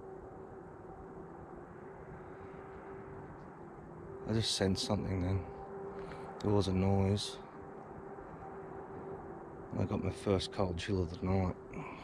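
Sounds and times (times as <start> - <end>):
distant highway traffic: 0.0 - 12.0
faint steady hum: 0.0 - 12.0.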